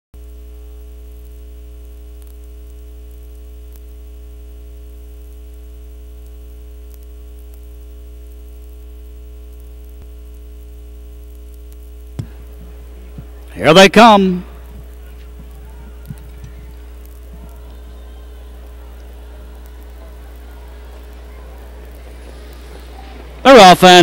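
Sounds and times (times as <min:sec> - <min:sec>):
electrical mains hum: 0:00.2 - 0:24.0
static crackle: 0:00.2 - 0:24.0.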